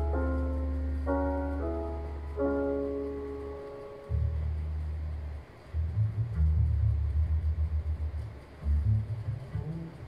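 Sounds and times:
double bass playing low notes: 0:00.0 - 0:10.0.

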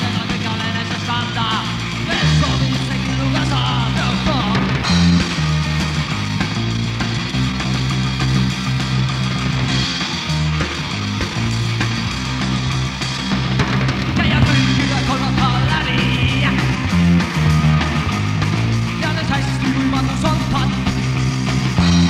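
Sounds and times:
bass guitar: 0:00.0 - 0:22.0
distorted electric guitar: 0:00.0 - 0:22.0
drums: 0:00.0 - 0:22.0.

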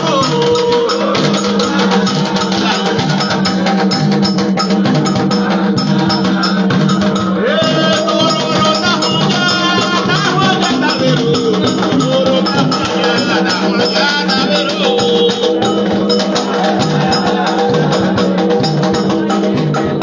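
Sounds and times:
drums: 0:00.0 - 0:20.0
group singing: 0:00.0 - 0:20.0.

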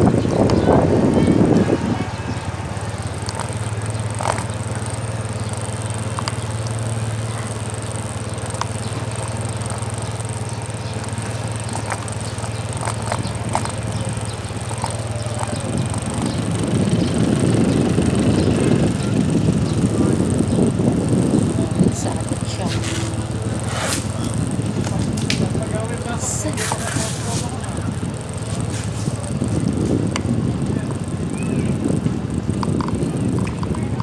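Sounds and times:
motorcycle engine running: 0:00.0 - 0:34.0
wind buffeting microphone: 0:00.0 - 0:34.0.

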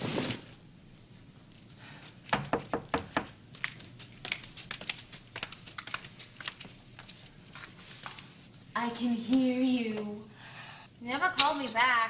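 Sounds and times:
light footsteps in a room: 0:00.0 - 0:10.2.

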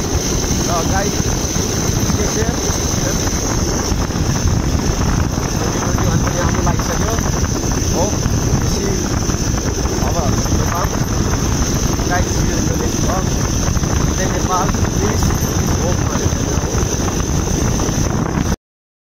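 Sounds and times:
motorcycle engine and tyre noise: 0:00.0 - 0:18.6
wind rushing over microphone: 0:00.0 - 0:18.6.

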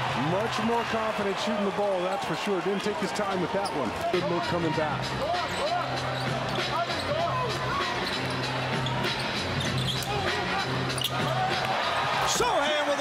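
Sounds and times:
crowd noise: 0:00.0 - 0:13.0
sneakers squeaking: 0:03.5 - 0:04.1, 0:05.2 - 0:12.2.

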